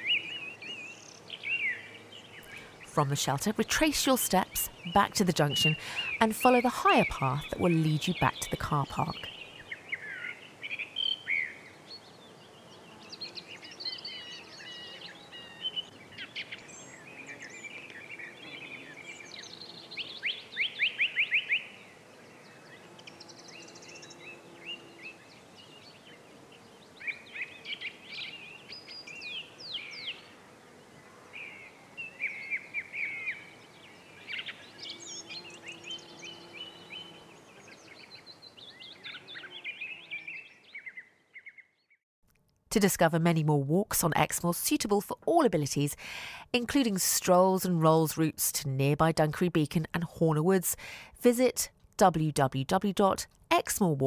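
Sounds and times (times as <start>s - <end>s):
songbirds singing and trilling: 0.0s - 42.0s
faint outdoor hiss: 0.0s - 54.0s.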